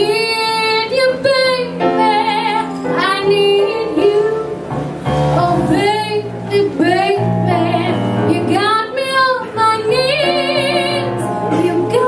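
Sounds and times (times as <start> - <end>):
piano accompaniment: 0.0 - 12.0.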